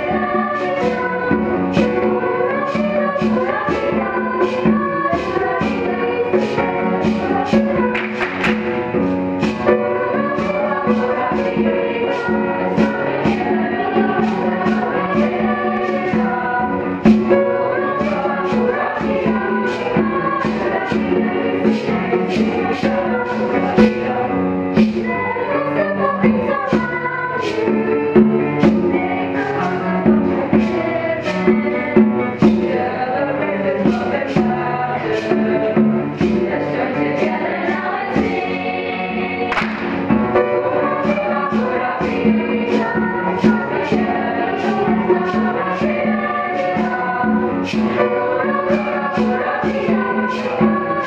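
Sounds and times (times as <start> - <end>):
bright percussive beat: 0.0 - 51.0
choir singing held chords: 0.0 - 51.0.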